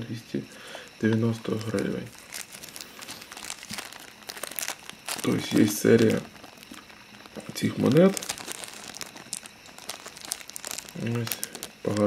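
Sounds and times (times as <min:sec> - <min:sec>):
plastic bag crinkling: 0:01.0 - 0:12.0.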